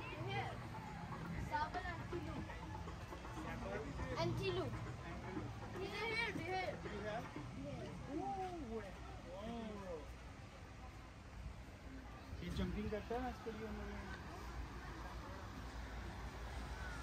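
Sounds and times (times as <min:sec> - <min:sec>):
children talking and calling: 0:00.0 - 0:09.3, 0:13.6 - 0:17.0.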